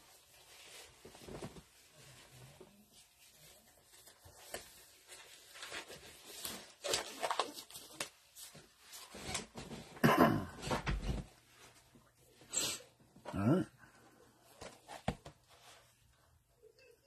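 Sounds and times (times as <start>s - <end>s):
gloves rustling: 0.0s - 10.0s.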